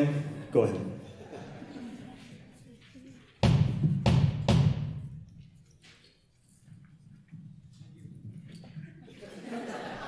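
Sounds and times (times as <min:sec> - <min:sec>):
deep percussion strikes: 0:03.4 - 0:05.3.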